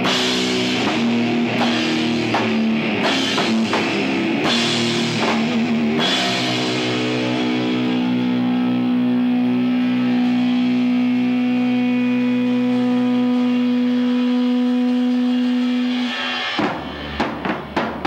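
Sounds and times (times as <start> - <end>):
drum hits: 0.0 - 7.4, 16.6 - 18.0
electric guitar sustained chord: 0.0 - 16.5.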